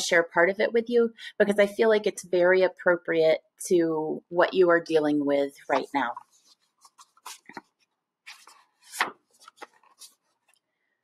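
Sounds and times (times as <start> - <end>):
book rustling: 5.6 - 10.7.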